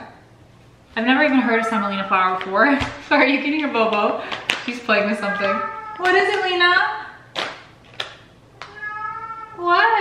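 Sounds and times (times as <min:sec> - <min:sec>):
cat meowing: 0:05.2 - 0:06.5, 0:08.5 - 0:10.0.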